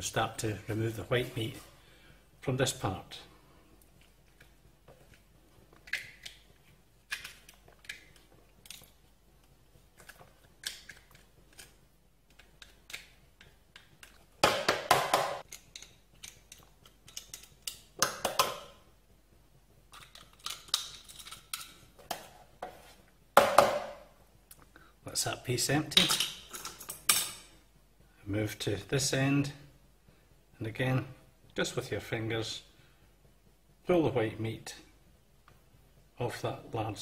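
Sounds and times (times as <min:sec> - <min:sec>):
crab shell clicks and scrapes: 0:10.0 - 0:14.2.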